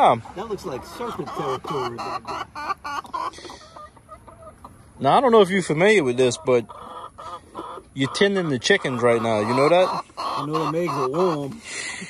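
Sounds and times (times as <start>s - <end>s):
hens clucking: 0.0s - 12.0s.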